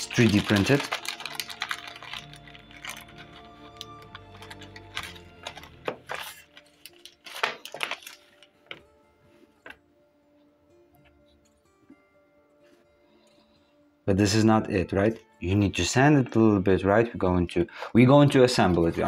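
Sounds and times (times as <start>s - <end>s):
plastic bag crinkling: 0.0s - 8.8s
soft background music: 0.0s - 19.0s.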